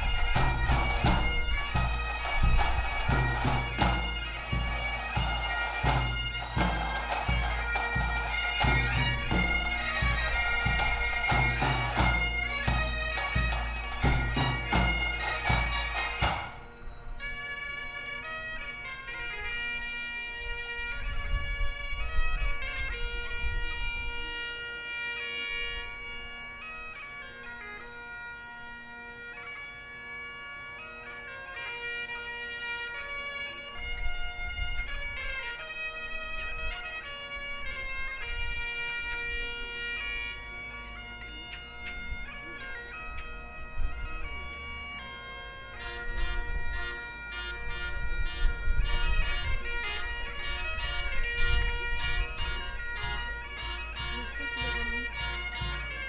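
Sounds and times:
drums beating: 0:00.0 - 0:16.6, 0:52.4 - 0:56.0
bagpipes and bombardes: 0:00.0 - 0:56.0.

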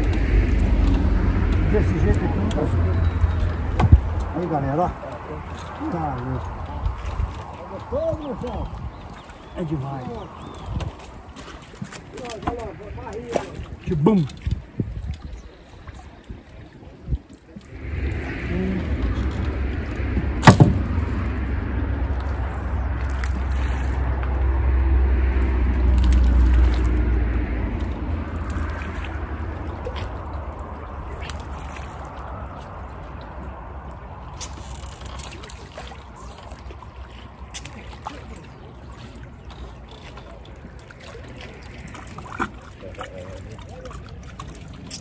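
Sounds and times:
low rumble: 0:00.0 - 0:11.4, 0:17.4 - 0:44.7
water sloshing and lapping: 0:00.0 - 0:45.0.

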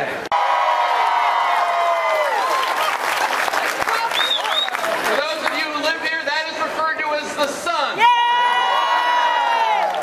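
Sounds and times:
crowd cheering: 0:00.0 - 0:05.7, 0:08.0 - 0:10.0.

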